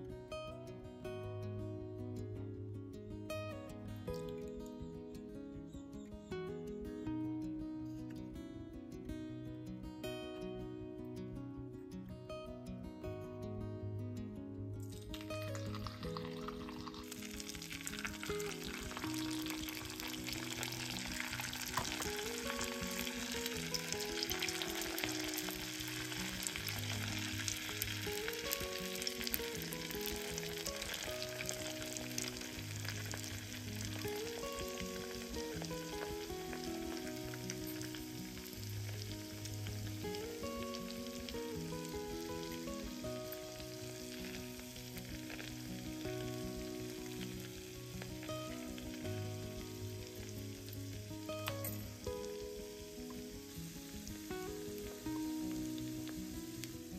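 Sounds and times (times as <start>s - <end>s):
slow melody of held notes: 0.0s - 56.9s
hot oil sizzling: 14.9s - 56.9s.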